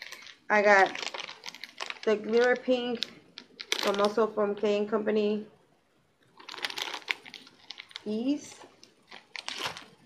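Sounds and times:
plastic packaging crinkling: 0:00.0 - 0:04.4, 0:06.2 - 0:10.0.

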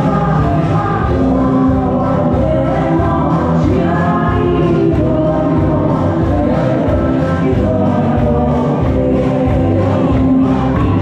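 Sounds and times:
crowd singing together: 0:00.0 - 0:11.0
loud amplified music with beat: 0:00.0 - 0:11.0.

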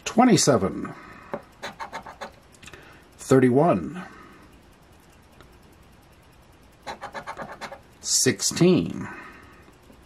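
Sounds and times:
coin scraping lottery ticket: 0:01.6 - 0:02.4, 0:06.8 - 0:07.8.

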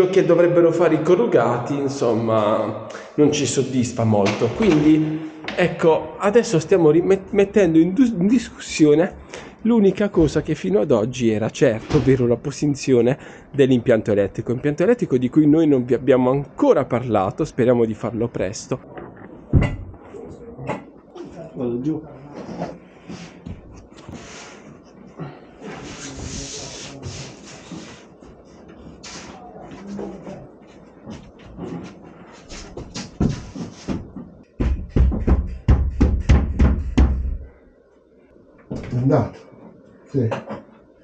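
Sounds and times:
hard knocks: 0:19.5 - 0:20.0, 0:32.8 - 0:37.5
heavy thump: 0:19.5 - 0:20.0, 0:32.8 - 0:37.5.

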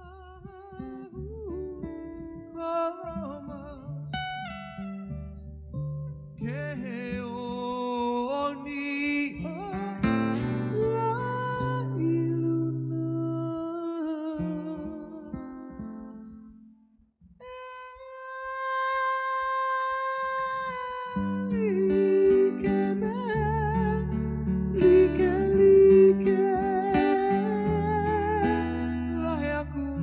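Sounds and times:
man singing: 0:00.0 - 0:04.1, 0:06.4 - 0:15.9, 0:17.4 - 0:30.0
acoustic guitar strumming: 0:00.0 - 0:30.0.

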